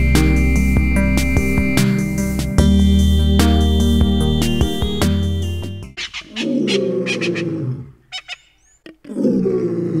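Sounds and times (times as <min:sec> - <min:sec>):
rising whistle: 0:00.0 - 0:06.0
low drawn-out roar-like call: 0:06.3 - 0:08.0, 0:09.1 - 0:10.0.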